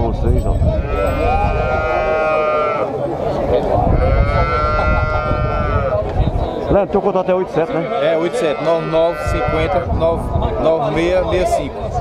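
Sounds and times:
crowd chatter: 0:00.0 - 0:12.0
cattle bawling: 0:00.8 - 0:03.0, 0:03.8 - 0:06.1, 0:07.6 - 0:10.0.

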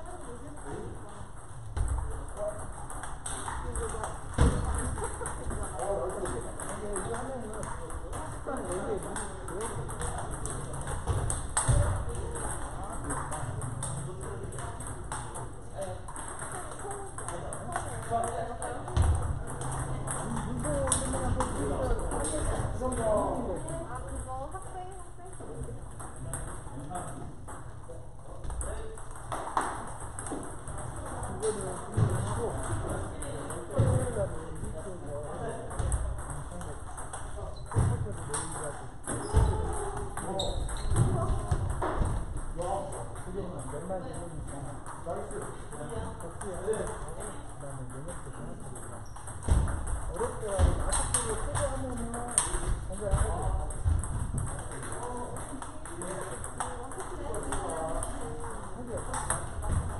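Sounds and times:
ping pong ball clicking: 0:00.0 - 0:27.8, 0:28.4 - 0:59.9
people talking: 0:01.9 - 0:27.3, 0:37.4 - 0:48.8, 0:50.1 - 0:59.9.

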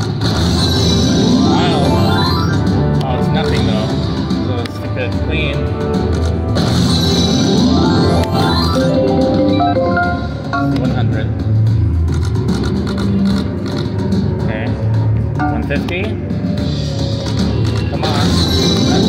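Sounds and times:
slot machine reel-spin effects: 0:00.6 - 0:02.9, 0:06.8 - 0:11.0
slot machine game music: 0:00.6 - 0:03.9, 0:06.8 - 0:11.3.

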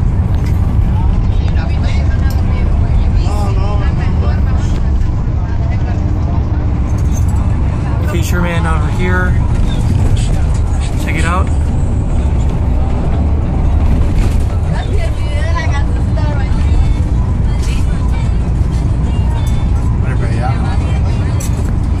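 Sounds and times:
car interior road noise: 0:00.0 - 0:22.0.

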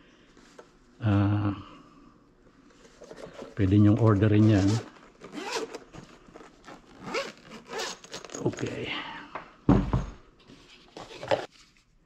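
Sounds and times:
zipper being unzipped: 0:04.6 - 0:08.6.

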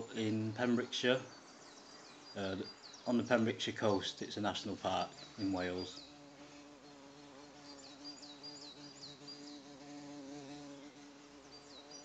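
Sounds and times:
bird chirping: 0:00.0 - 0:12.0
faint buzzing drone: 0:04.6 - 0:12.0.

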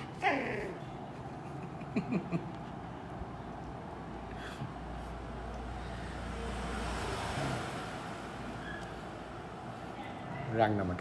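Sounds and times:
passing road traffic: 0:00.0 - 0:11.0.

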